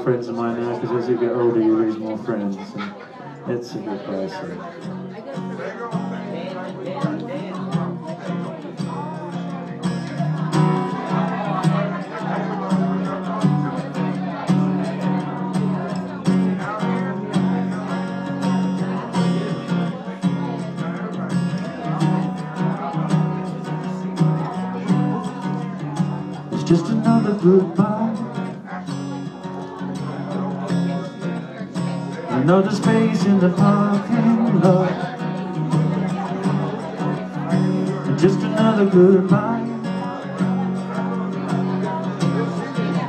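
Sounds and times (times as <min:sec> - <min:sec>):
acoustic guitar strumming: 0:00.0 - 0:43.0.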